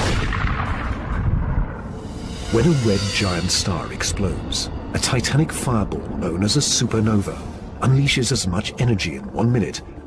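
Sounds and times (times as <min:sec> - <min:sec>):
explosion blast: 0:00.0 - 0:03.1
deep rumble: 0:00.0 - 0:10.0.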